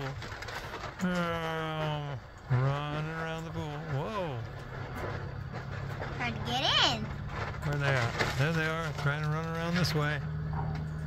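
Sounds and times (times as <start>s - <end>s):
faint rustling and scuffling: 0.0s - 11.0s.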